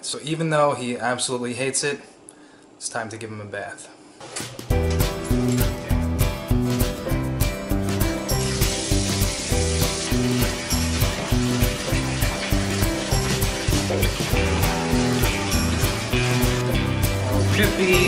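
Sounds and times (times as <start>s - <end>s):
background music with steady beat: 4.4s - 18.0s
water running from bathtub faucet: 8.0s - 18.0s.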